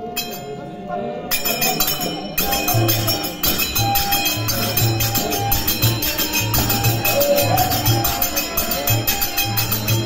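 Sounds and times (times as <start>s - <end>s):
held musical tone: 0.0s - 10.0s
jingling metal percussion: 0.0s - 10.0s
voices: 0.0s - 10.0s.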